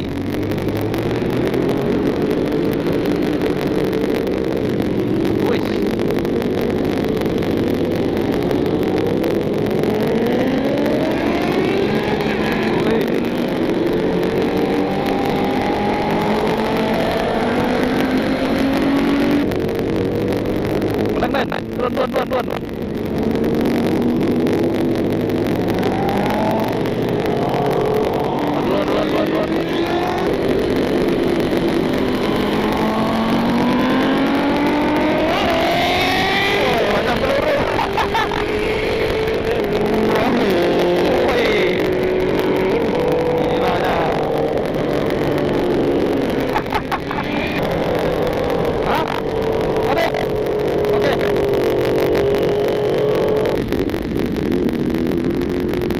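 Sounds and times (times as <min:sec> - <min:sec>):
motorcycle engine accelerating: 0:00.0 - 0:55.9
road and wind rush: 0:00.0 - 0:55.9.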